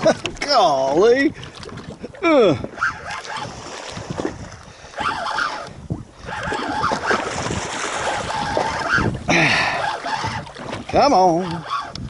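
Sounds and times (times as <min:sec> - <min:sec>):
water lapping against boat hull: 0:00.0 - 0:12.0
wind buffeting microphone: 0:00.0 - 0:12.0
fishing rod and reel handling: 0:02.7 - 0:07.3, 0:08.0 - 0:12.0.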